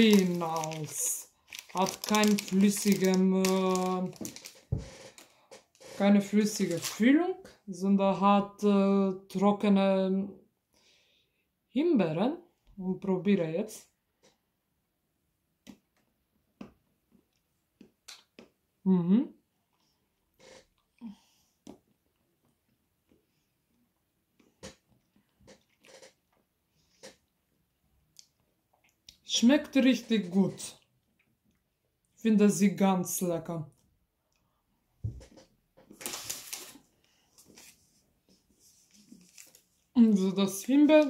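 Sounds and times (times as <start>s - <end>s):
wrapper crinkling: 0.0s - 7.2s, 35.9s - 37.8s, 38.7s - 41.0s.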